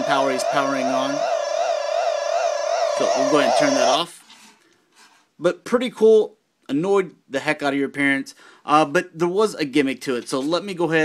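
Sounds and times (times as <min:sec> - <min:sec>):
warbling high electronic tone: 0:00.0 - 0:04.1.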